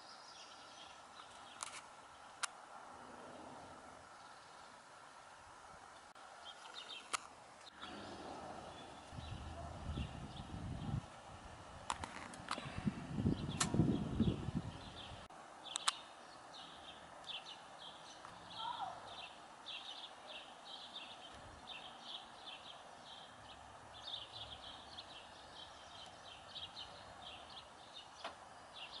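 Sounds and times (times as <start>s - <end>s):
low rumbling noise: 2.6s - 5.9s, 7.7s - 15.3s
lower falling bird call: 6.0s - 11.0s, 12.5s - 29.0s
small bird chirping: 13.1s - 29.0s.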